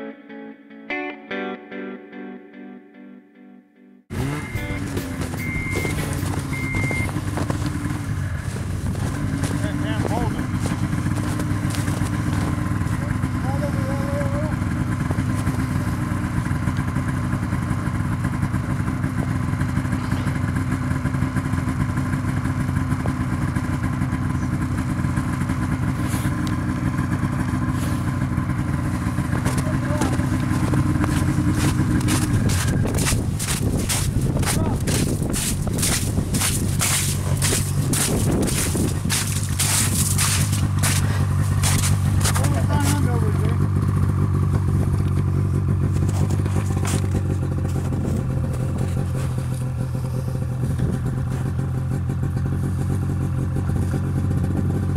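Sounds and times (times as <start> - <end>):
snowmobile engine idling: 4.1 - 54.9.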